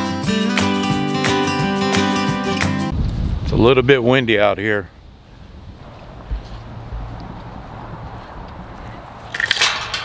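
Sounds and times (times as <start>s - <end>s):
wind rumbling on microphone: 2.9s - 9.4s
metal gate clinking and rattling: 9.3s - 10.0s.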